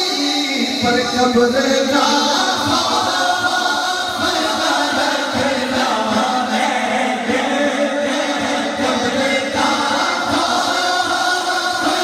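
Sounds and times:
man singing into microphone: 0:00.0 - 0:12.0.

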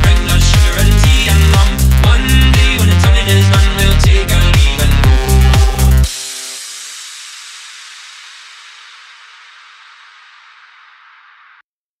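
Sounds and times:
psytrance beat: 0:00.0 - 0:11.6
hissing tail: 0:03.8 - 0:11.6.

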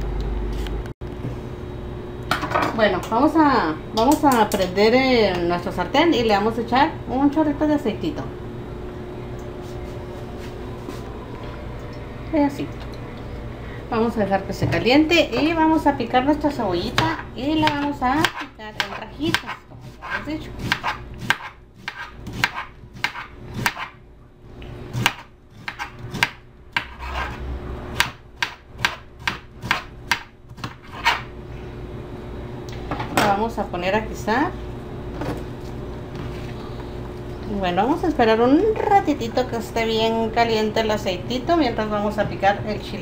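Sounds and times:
gas burner low rumble: 0:00.0 - 0:21.8, 0:27.4 - 0:29.2, 0:31.3 - 0:43.0
faint constant hum: 0:00.0 - 0:43.0
knife chopping on cutting board: 0:17.0 - 0:24.0, 0:24.9 - 0:27.4, 0:28.0 - 0:31.3.

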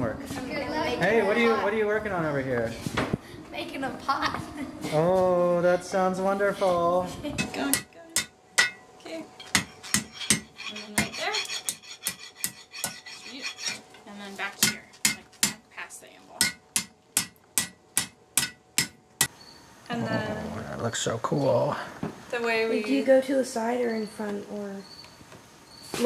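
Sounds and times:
hammer striking iron on anvil: 0:07.7 - 0:08.8, 0:16.4 - 0:19.3.

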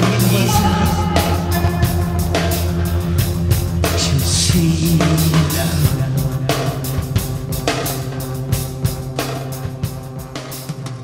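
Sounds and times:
electric guitar: 0:00.0 - 0:08.2
bass guitar: 0:00.0 - 0:10.5
drum kit: 0:00.0 - 0:11.0.

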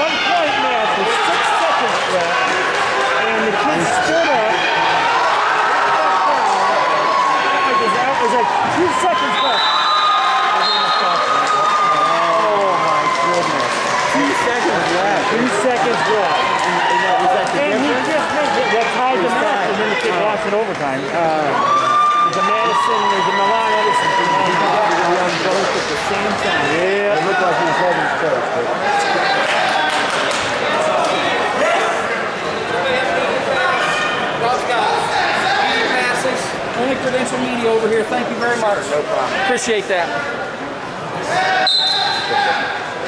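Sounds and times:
crowd voices talking: 0:00.0 - 0:43.0.

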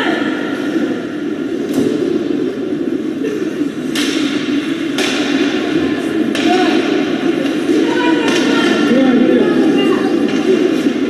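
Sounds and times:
hockey sticks and puck knocking: 0:03.9 - 0:05.6, 0:06.3 - 0:08.8
murmur of spectators: 0:05.3 - 0:11.0.

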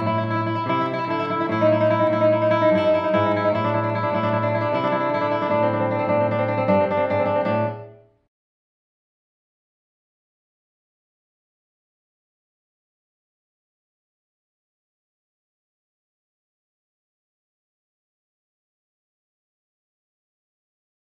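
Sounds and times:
classical guitar trill with bass: 0:00.0 - 0:08.1.

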